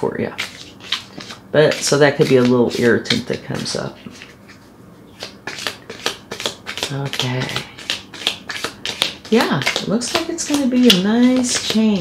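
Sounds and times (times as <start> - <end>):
cards clicking and tapping: 5.2 - 12.0.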